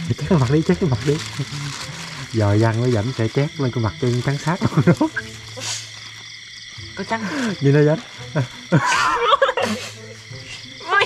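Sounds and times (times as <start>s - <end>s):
frogs and insects chorus: 0.0s - 11.0s
person laughing: 8.4s - 10.0s.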